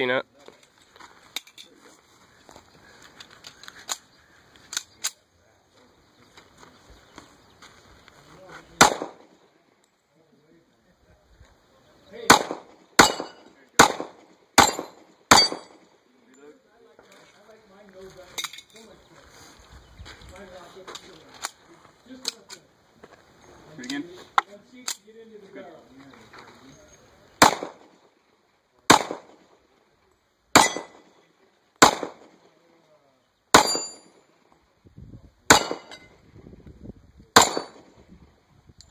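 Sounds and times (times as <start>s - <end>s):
faint metal clinks and handling: 0.4s - 2.1s, 16.2s - 17.5s, 18.3s - 19.0s
pistol shots at steel targets: 8.8s - 9.4s, 12.2s - 15.9s, 27.4s - 28.0s, 28.9s - 29.5s, 30.5s - 31.2s, 31.8s - 32.4s, 33.5s - 34.3s, 35.5s - 36.1s, 37.4s - 38.0s.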